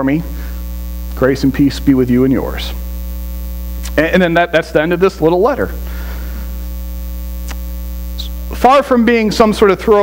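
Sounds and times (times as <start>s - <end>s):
electrical mains hum: 0.0s - 10.0s
faint click: 7.4s - 7.6s.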